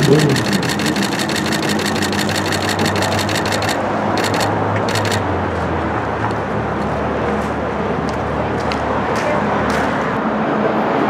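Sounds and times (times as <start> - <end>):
rapid even ticking: 0.0 - 5.3
car engines running: 0.0 - 7.9.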